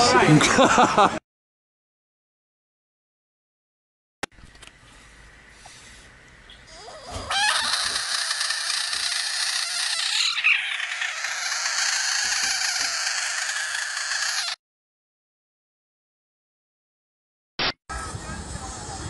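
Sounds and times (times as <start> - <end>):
frog screaming: 6.7 - 14.6.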